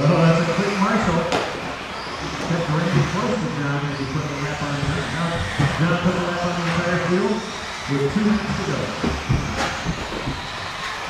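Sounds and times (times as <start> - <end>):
rc car motors whining: 0.0 - 11.0
announcer speaking: 2.4 - 9.0.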